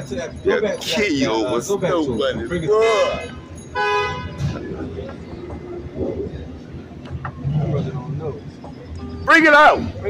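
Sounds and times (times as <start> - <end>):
low street noise: 0.0 - 10.0
car horn honking: 2.7 - 4.7.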